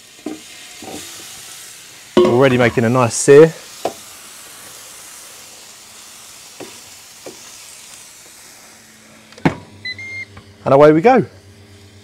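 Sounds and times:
chicken wings sizzling: 0.0 - 12.0.

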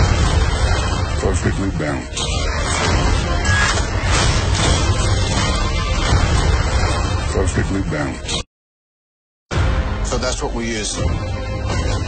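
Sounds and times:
film music: 0.0 - 8.4, 9.5 - 12.0.

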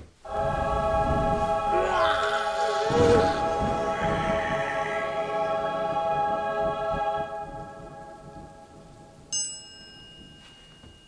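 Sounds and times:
eerie sustained chord: 0.2 - 9.2
high bell-like ding: 9.3 - 11.0.

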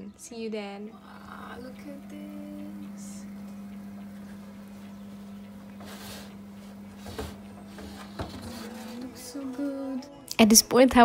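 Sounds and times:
oven humming: 0.0 - 10.3.

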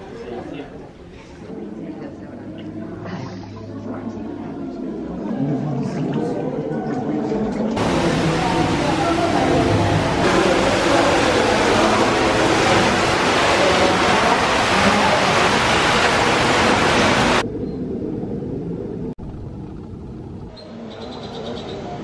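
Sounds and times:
water rushing in a cave: 7.8 - 17.4.

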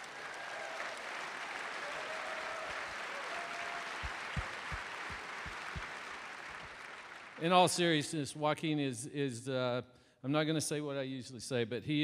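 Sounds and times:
audience applauding: 0.0 - 7.6.

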